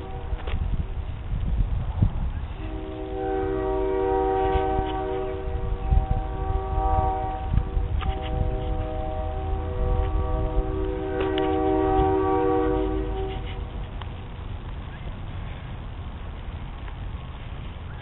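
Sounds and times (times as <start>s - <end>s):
train horn chord: 0.0s - 0.6s, 2.5s - 13.7s
low rumble: 0.0s - 18.0s.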